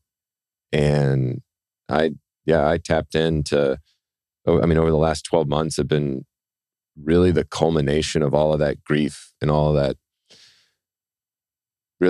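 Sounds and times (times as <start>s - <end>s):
faint breath at microphone: 10.3s - 10.8s.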